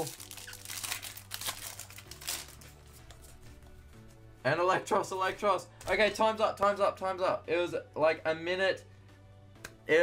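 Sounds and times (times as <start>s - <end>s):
foil wrapper crinkling and tearing: 0.0s - 2.8s
quiet background music: 0.0s - 10.0s.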